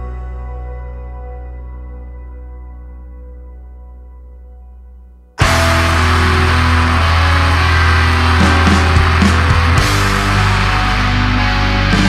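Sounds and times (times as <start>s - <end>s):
steady low bass: 0.0s - 12.0s
metal band playing loud: 5.4s - 12.0s.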